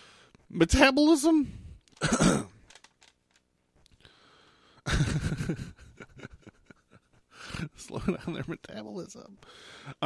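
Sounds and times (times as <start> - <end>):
faint clicks: 1.8 - 4.0
man clearing his throat: 2.0 - 2.6.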